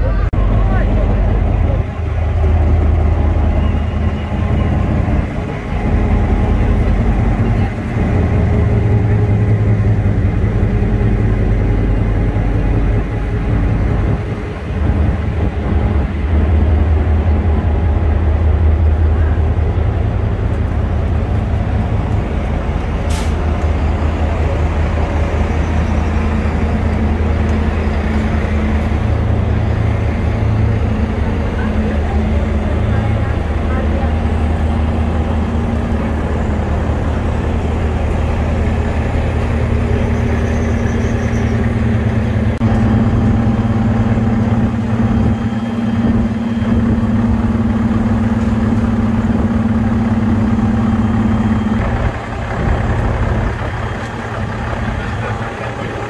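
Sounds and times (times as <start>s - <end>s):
diesel train engine drone: 0.0s - 56.0s.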